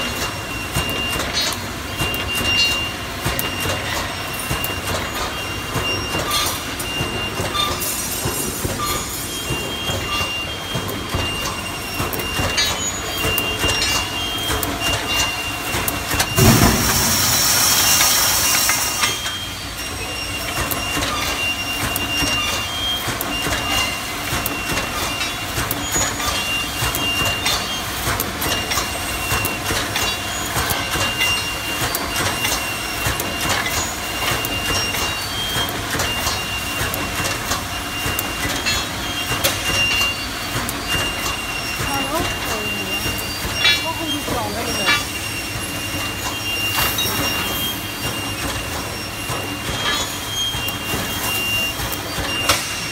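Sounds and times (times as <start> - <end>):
welding machine clicks and knocks: 0.0 - 19.2, 20.5 - 41.8
loud hiss: 16.4 - 19.2.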